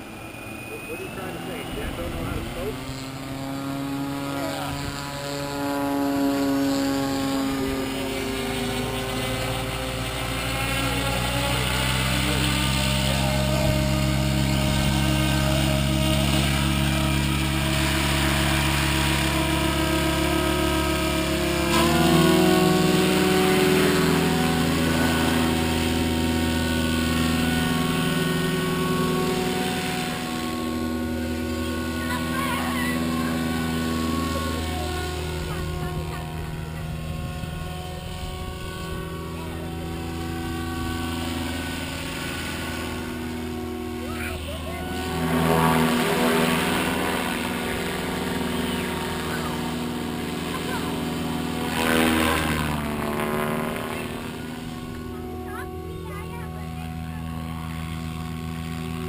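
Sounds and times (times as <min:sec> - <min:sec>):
model helicopter rotor whine: 0:00.0 - 0:59.0.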